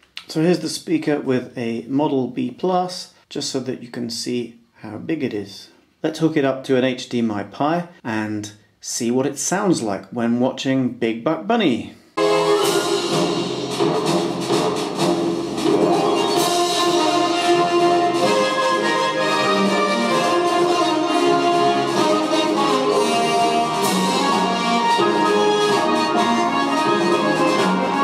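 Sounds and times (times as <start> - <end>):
orchestral music from small speaker: 12.2 - 28.0.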